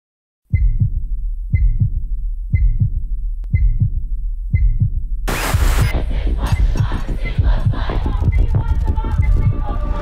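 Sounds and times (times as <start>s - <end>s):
heartbeat-like double thump: 0.5s - 9.8s
steady low rumble: 0.8s - 9.7s.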